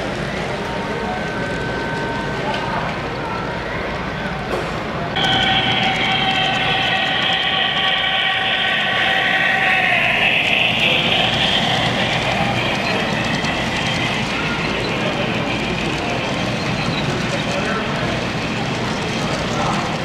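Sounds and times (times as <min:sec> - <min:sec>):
model train running noise: 0:00.0 - 0:20.0
model train steam whistle: 0:05.2 - 0:16.3.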